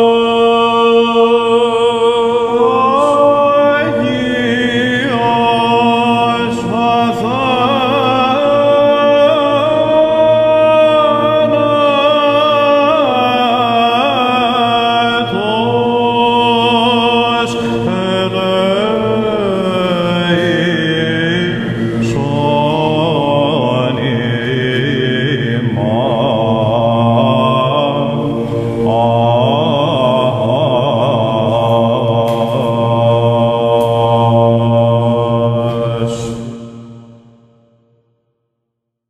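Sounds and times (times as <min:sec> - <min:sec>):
male chanters singing: 0:00.0 - 0:36.8
held vocal drone: 0:00.0 - 0:37.9.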